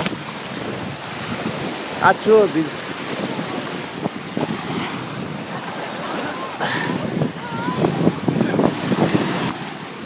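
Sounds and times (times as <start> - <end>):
small waves lapping on shore: 0.0 - 10.0
wind on microphone: 0.0 - 10.0.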